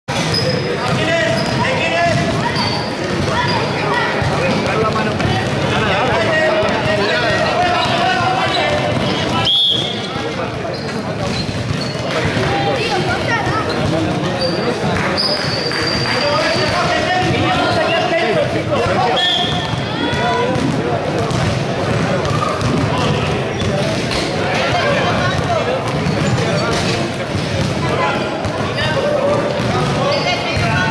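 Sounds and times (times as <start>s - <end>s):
basketball bouncing on court: 0.2s - 14.5s, 18.8s - 30.9s
children calling and shouting: 1.1s - 9.5s, 12.1s - 14.7s, 16.2s - 21.2s
children's voices calling out: 1.6s - 6.0s, 12.4s - 14.1s
basketball bouncing on floor: 4.3s - 5.7s, 19.5s - 24.2s.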